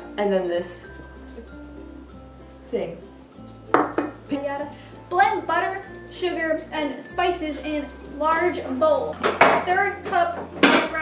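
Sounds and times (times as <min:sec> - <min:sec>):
kitchen items clinking on stone: 0:03.6 - 0:04.5.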